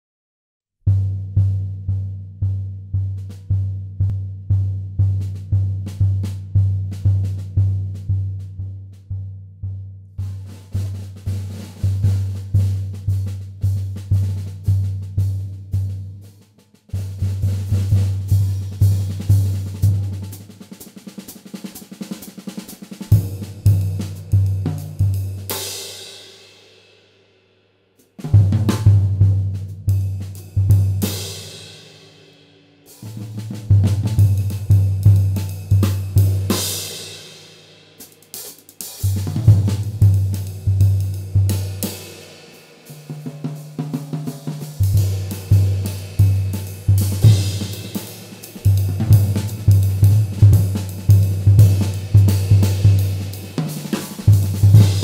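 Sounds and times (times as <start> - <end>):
drum kit solo: 0.9 - 9.4, 10.2 - 27.0, 28.0 - 55.0.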